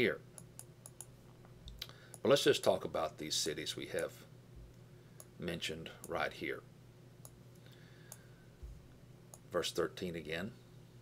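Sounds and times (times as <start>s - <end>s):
small sharp clicks: 0.4s - 1.1s
soft low thump: 8.6s - 8.9s.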